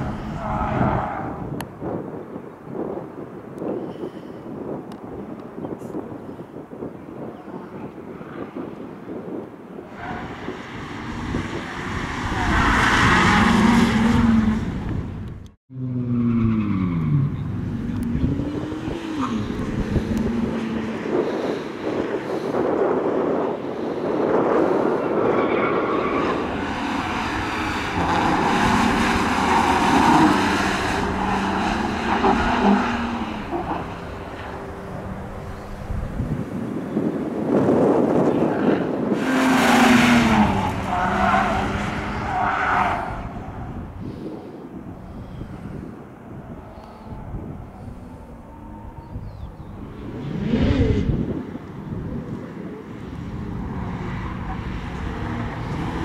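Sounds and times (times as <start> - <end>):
tyres skidding and squealing: 0.0 - 1.6, 9.7 - 51.2
car engine revving: 26.2 - 36.4.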